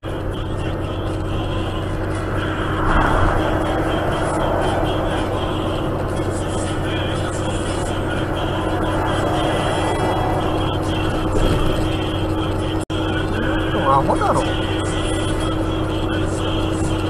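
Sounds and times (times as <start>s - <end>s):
road and engine noise in truck cab: 0.0s - 17.0s
truck overtaking: 0.0s - 17.0s.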